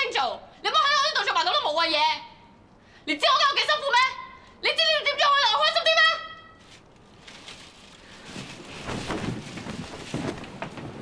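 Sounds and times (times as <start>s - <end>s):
woman shouting: 0.0s - 2.3s, 3.1s - 6.5s
faint rustling: 6.5s - 11.0s.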